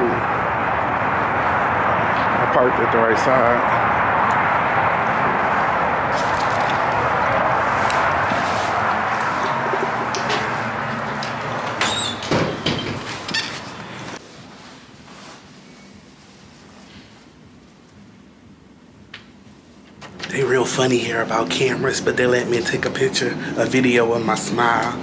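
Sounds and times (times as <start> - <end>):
outdoor noise: 0.0 - 25.0
glass door opening: 9.8 - 13.9, 19.9 - 20.5.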